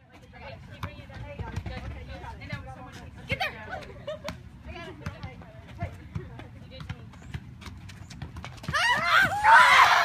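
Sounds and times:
soccer ball kicked and headed: 0.0s - 9.6s
girls shrieking and cheering: 8.7s - 10.0s.

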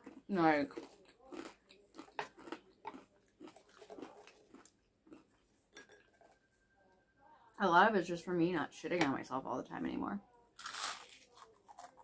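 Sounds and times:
chewing and mouth smacks: 0.0s - 5.4s.

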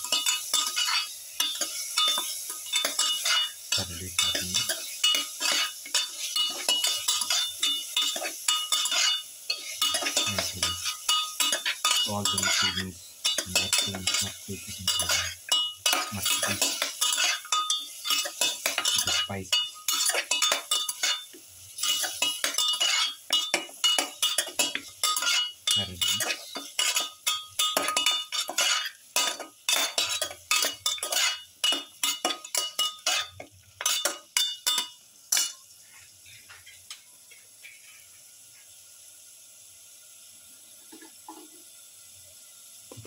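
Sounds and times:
faint sizzle from pot: 0.0s - 43.0s
spatula scraping metal pot: 0.1s - 3.6s, 4.2s - 27.1s, 27.7s - 31.8s.

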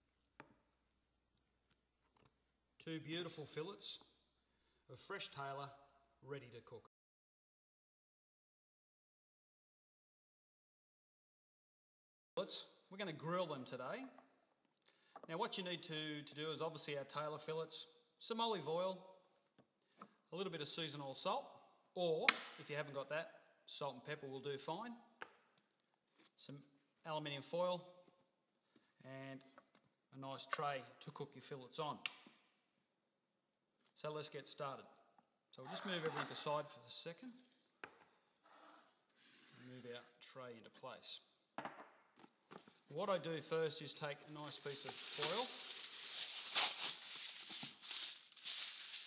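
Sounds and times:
aluminium foil crinkling: 44.4s - 49.0s.

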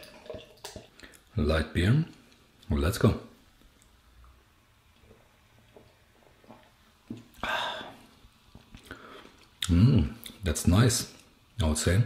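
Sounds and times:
person sipping beer: 5.0s - 10.4s.

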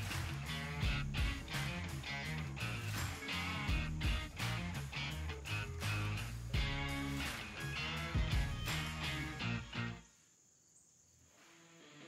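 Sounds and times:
guitar music: 0.0s - 10.0s
insect drone: 0.0s - 12.0s.

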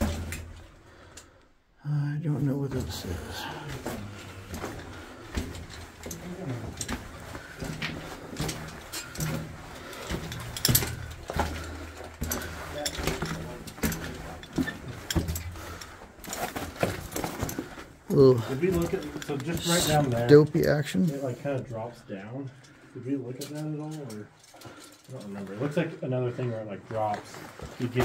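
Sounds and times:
footsteps crunching on rubble: 3.1s - 18.1s, 26.9s - 28.0s.

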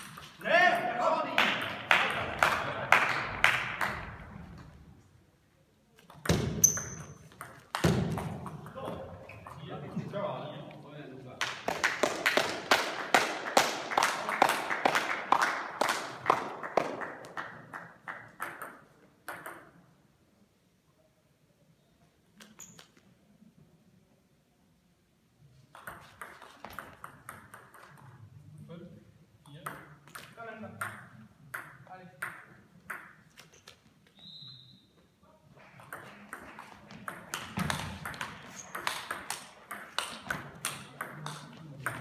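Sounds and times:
voices talking in a hall: 0.0s - 6.2s, 8.2s - 12.0s, 34.5s - 42.0s.

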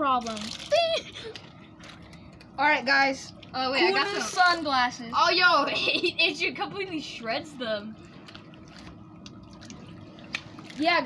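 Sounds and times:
water trickling: 0.0s - 2.2s, 8.0s - 11.0s
water beads clicking: 0.2s - 0.9s.

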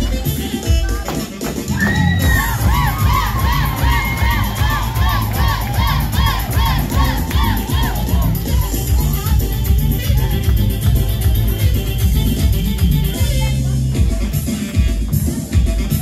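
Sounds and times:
person yelling rapid cries: 1.8s - 8.6s
dance track with low beat: 1.8s - 16.0s.

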